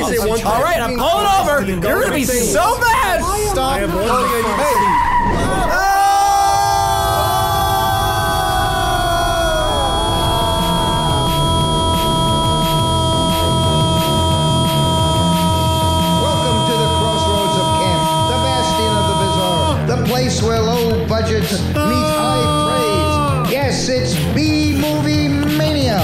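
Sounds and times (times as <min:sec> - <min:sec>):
car skid: 0:04.1 - 0:05.8
music beat: 0:09.6 - 0:26.0
electronic drone: 0:09.7 - 0:19.8.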